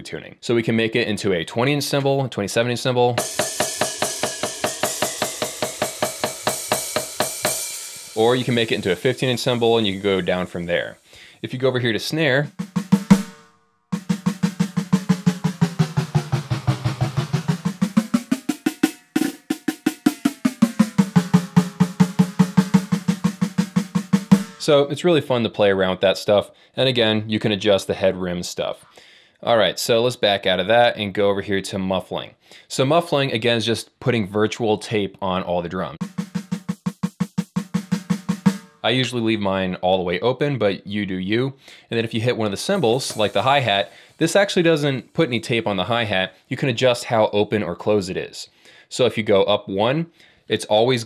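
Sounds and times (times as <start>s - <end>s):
electronic snare drum roll: 3.2s - 11.0s, 11.6s - 13.4s, 14.0s - 24.8s, 36.0s - 38.9s, 42.6s - 46.2s.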